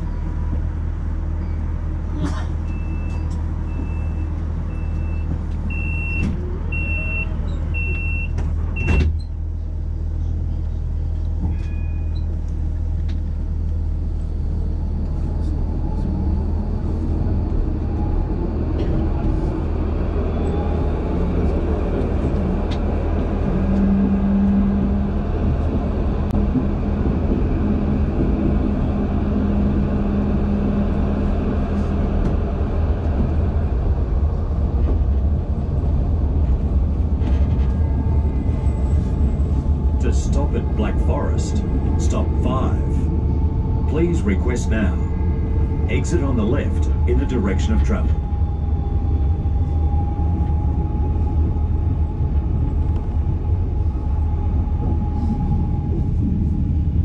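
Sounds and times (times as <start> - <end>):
door warning beeps: 2.7 - 9.2
steady low hum: 21.9 - 57.0.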